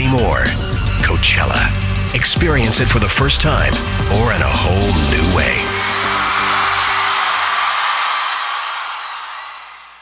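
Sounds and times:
trailer closing music: 0.3s - 7.2s
concert crowd cheering: 4.5s - 10.0s.

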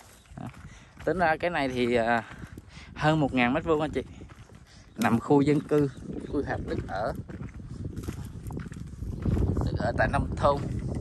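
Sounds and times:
footsteps on sandy ground: 0.0s - 11.0s
wind rumbling on microphone: 0.0s - 11.0s.

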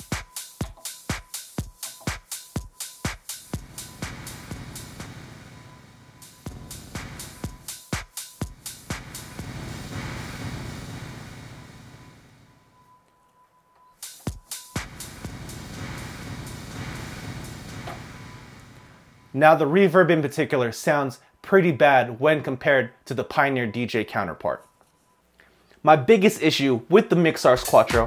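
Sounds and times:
house music kick drum beat: 0.0s - 12.4s, 14.0s - 19.3s, 27.5s - 28.0s.

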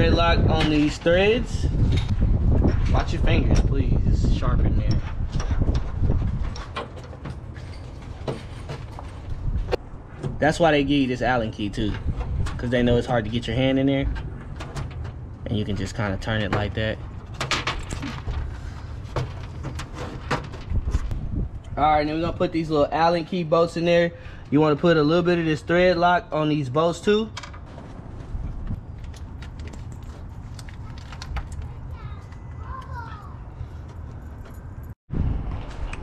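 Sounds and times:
low rumble on microphone: 0.0s - 6.6s.

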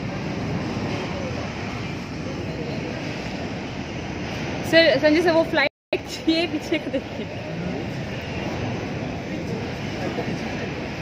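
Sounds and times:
heavy rain: 0.0s - 11.0s
storm wind: 0.0s - 11.0s
wind buffeting microphone: 0.0s - 11.0s.

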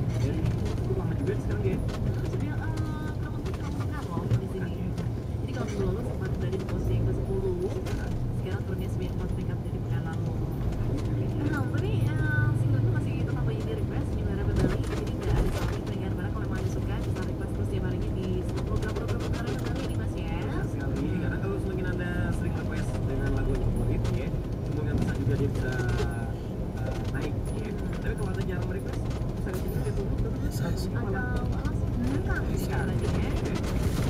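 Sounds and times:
car engine and road rumble: 0.0s - 34.0s.

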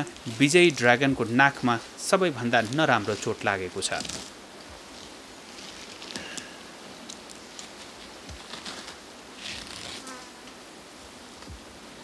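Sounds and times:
soft outdoor hiss: 0.0s - 12.0s
flying insect buzzing: 4.0s - 10.9s.

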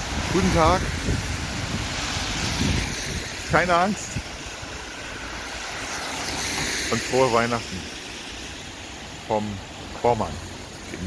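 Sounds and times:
wind rumble on microphone: 0.0s - 6.7s
traffic hiss on wet road: 0.0s - 11.0s.

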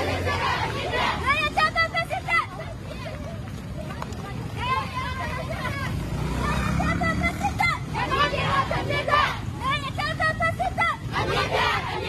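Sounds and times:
street noise rumble: 0.0s - 12.0s
women shouting slogans: 0.0s - 12.0s.

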